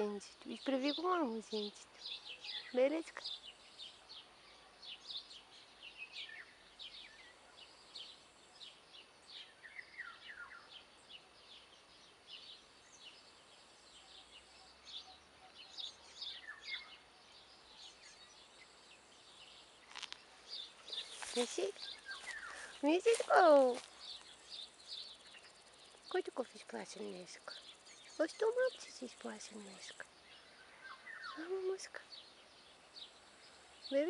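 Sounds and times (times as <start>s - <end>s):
small birds chirping: 0.0s - 34.0s.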